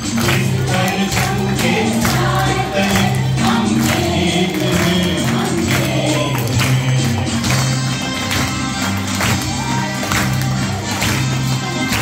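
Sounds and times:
group of voices singing: 0.0s - 7.8s
steady percussion beat: 0.0s - 12.0s.

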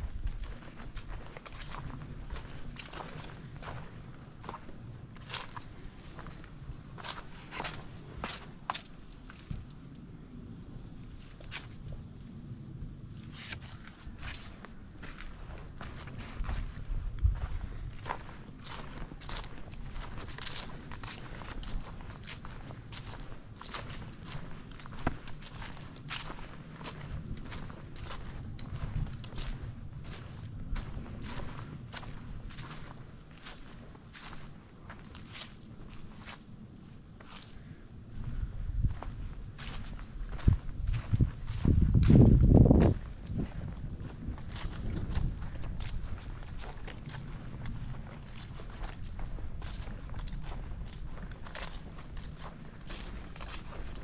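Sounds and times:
footsteps on garden path: 0.0s - 10.0s, 11.0s - 12.1s, 12.9s - 54.0s.

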